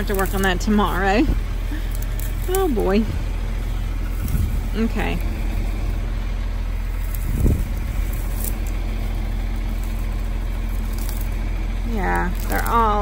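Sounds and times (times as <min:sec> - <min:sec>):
tractor engine idling: 0:00.0 - 0:13.0.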